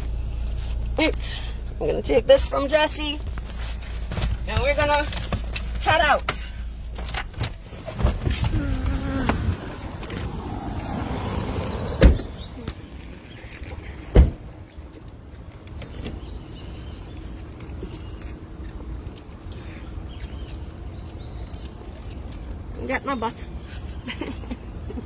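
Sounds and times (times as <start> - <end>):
car doors shutting: 6.9 - 12.9, 13.6 - 14.6.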